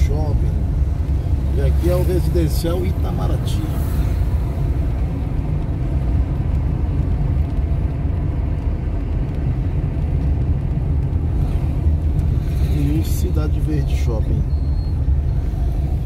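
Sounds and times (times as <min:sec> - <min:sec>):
car engine rumble: 0:00.0 - 0:16.0
road noise inside car: 0:00.0 - 0:16.0.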